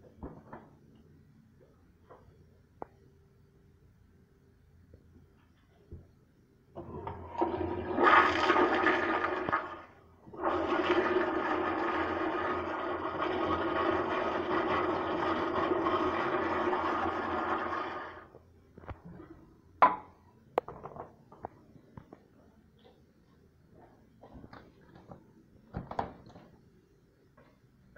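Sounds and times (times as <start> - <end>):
toilet flushing: 6.8 - 18.3.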